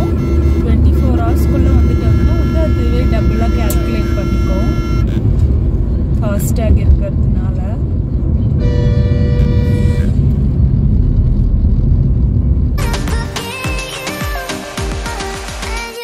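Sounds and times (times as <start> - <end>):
vehicle horns: 0.0 - 5.4, 8.6 - 10.4
road and engine rumble in car: 0.0 - 13.2.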